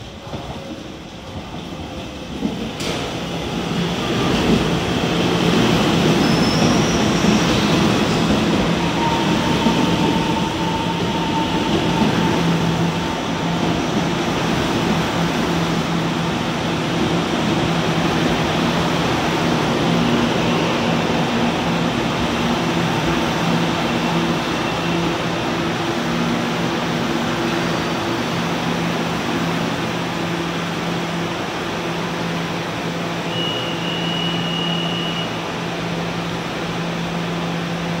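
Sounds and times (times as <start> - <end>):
short high beep: 33.3 - 35.4.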